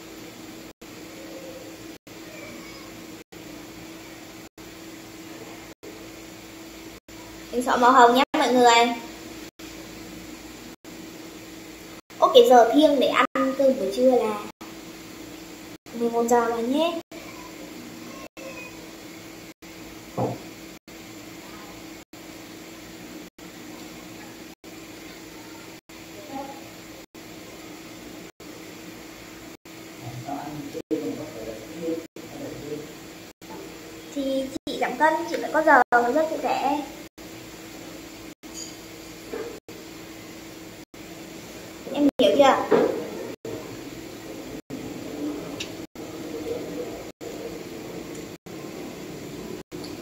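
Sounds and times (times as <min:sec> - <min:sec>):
low mechanical hum: 0:00.0 - 0:50.0.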